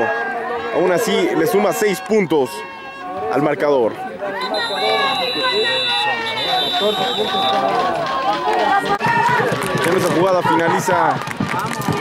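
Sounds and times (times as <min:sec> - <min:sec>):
players talking and calling out: 0:00.0 - 0:12.0.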